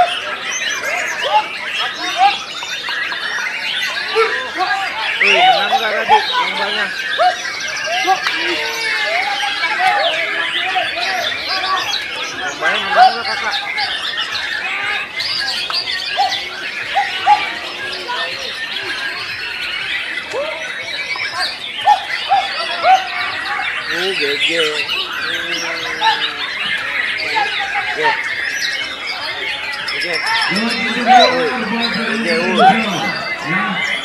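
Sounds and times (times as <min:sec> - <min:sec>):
birds whistling and chirping: 0:00.0 - 0:34.0
songbirds singing in chorus: 0:00.0 - 0:34.0.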